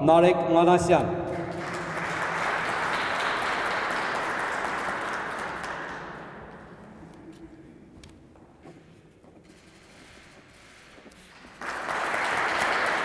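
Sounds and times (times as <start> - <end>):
audience applauding: 1.3 - 7.4, 11.3 - 13.0.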